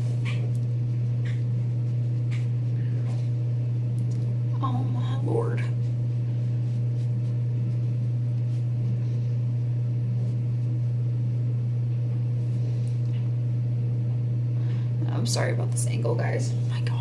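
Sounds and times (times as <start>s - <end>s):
low hum: 0.0s - 17.0s
makeup brush brushing on skin: 5.8s - 9.1s.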